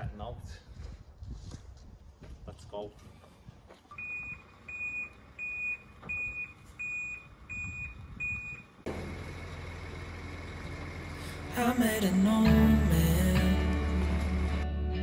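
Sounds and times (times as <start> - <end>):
reversing alarm beeps: 3.9 - 8.7
diesel engine running: 4.0 - 15.0.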